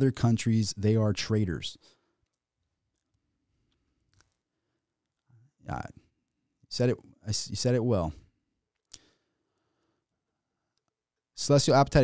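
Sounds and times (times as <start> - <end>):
man speaking: 0.0 - 1.8, 5.6 - 6.0, 6.7 - 8.2, 11.4 - 12.0.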